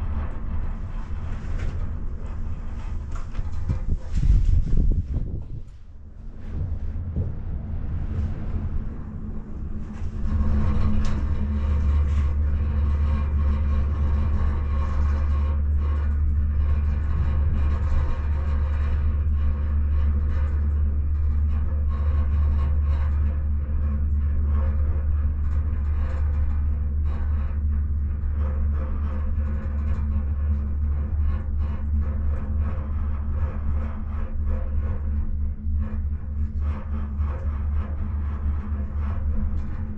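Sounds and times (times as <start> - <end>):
gondola cabin rumbling on cable: 0.0 - 39.9.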